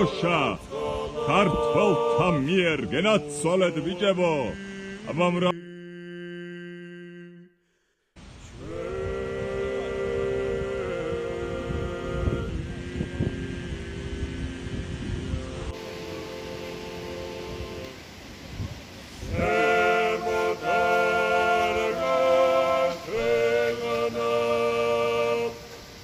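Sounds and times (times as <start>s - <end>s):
wind on microphone: 0.0s - 3.3s, 8.2s - 26.0s
men singing a cappella: 0.0s - 7.5s, 8.6s - 18.2s, 19.2s - 26.0s.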